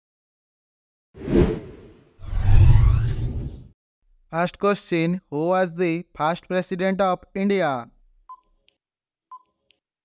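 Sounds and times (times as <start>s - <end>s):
whoosh with deep rumble: 1.2s - 3.7s.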